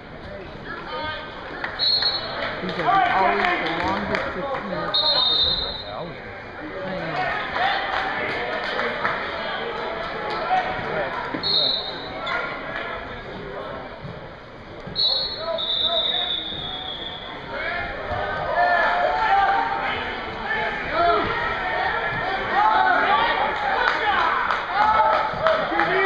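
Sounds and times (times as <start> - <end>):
spectators calling and shouting: 0.0 - 26.0.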